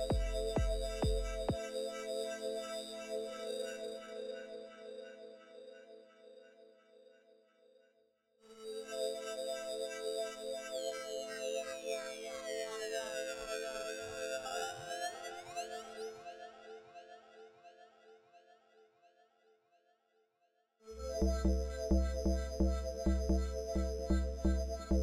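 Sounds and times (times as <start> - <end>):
sustained synthesizer chord: 21.0 - 25.0.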